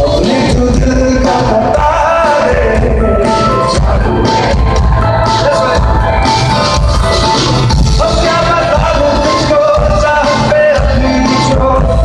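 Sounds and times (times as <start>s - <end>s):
live band music over loudspeakers: 0.0s - 12.0s.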